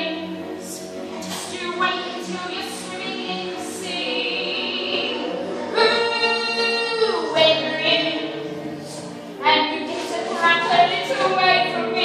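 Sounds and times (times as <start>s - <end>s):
woman singing show tune: 0.0s - 8.2s, 9.4s - 12.0s.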